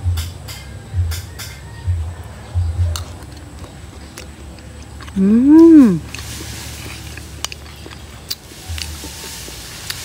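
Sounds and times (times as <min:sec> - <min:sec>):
low steady hum: 0:00.0 - 0:09.3.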